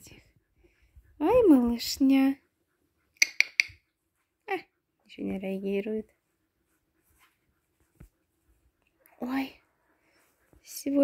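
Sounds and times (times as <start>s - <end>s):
faint soft rustles: 0.0s - 3.0s, 4.0s - 11.0s.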